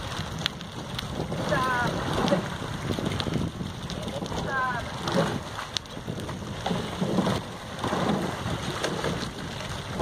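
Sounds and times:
water splashing from oars: 0.0s - 10.0s
wind rumbling on microphone: 0.0s - 10.0s.

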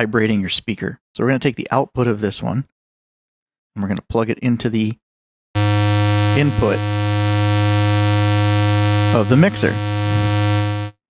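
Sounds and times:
low buzzy synth tone: 5.6s - 11.0s.

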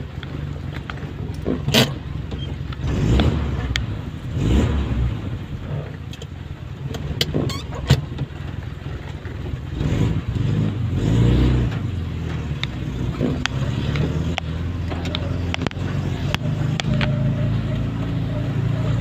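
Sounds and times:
car engine rumble: 0.0s - 19.0s
tyres on wet road: 0.0s - 19.0s.

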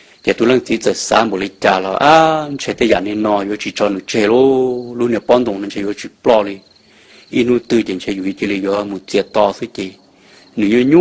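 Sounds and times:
faint high pulsing chirp: 0.0s - 11.0s
man narrating: 0.2s - 6.7s, 7.3s - 10.0s, 10.6s - 11.0s.

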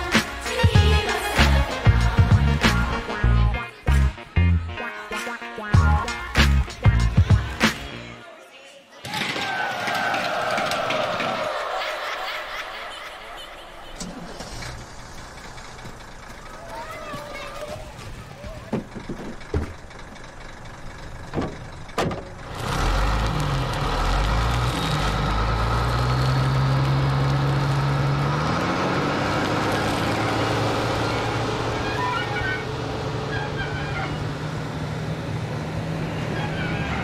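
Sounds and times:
heavy truck engine rumbling: 0.0s - 8.2s, 9.5s - 37.0s.

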